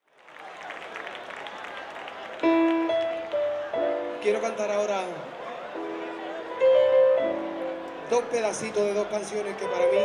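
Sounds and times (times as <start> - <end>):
audience applauding: 0.0 - 4.4, 8.0 - 10.0.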